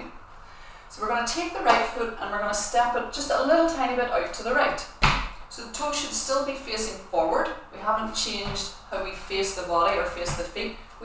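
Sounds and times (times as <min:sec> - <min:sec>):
woman speaking: 0:00.9 - 0:04.9, 0:05.6 - 0:10.8
foot stamp on wooden floor: 0:05.0 - 0:05.4.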